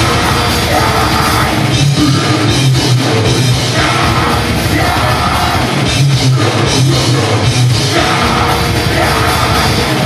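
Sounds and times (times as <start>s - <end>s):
distorted electric guitars: 0.0s - 10.0s
drums: 0.0s - 10.0s.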